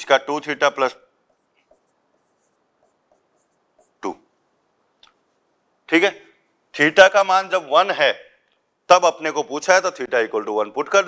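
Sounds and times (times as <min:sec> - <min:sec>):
pen scratching on board: 0:01.3 - 0:04.0.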